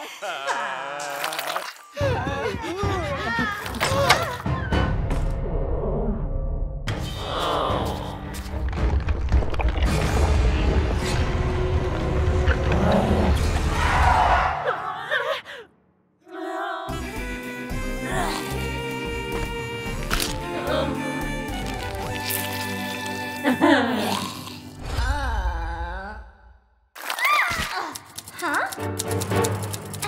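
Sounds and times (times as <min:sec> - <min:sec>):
background music: 0:01.8 - 0:15.3, 0:16.2 - 0:25.8, 0:28.0 - 0:30.0
rapid regular ticking: 0:27.9 - 0:30.0.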